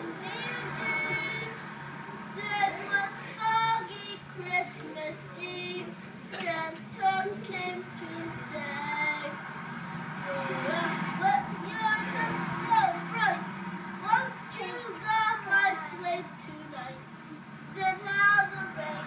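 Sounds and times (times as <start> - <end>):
children singing through tv speaker: 0.0 - 19.0.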